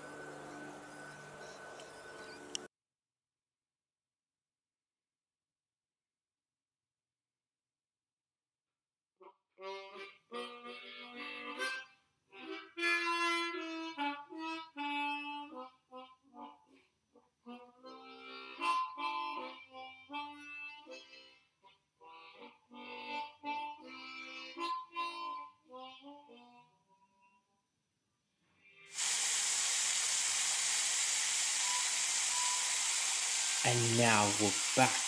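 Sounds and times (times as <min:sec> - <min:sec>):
harmonica playing a tune: 0:09.5 - 0:27.4.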